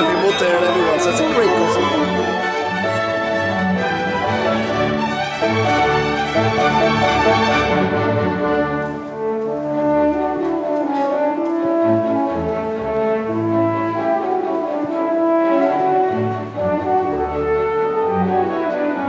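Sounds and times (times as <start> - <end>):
french horn melody: 0.0 - 19.0
orchestral accompaniment: 0.0 - 19.0.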